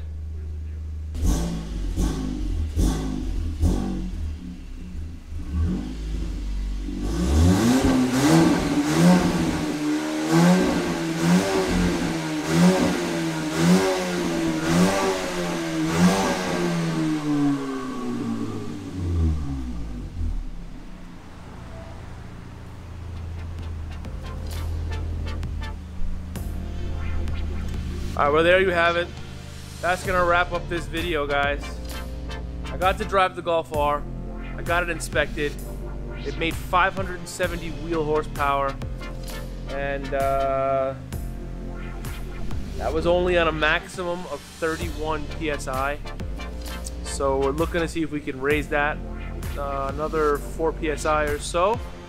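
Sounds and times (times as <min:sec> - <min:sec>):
car engine idling: 0:00.0 - 0:52.0
car engine revving: 0:00.0 - 0:52.0.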